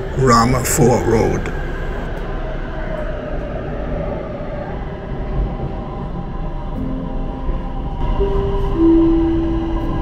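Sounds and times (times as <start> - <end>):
subway train wheels rumbling: 0.0 - 10.0.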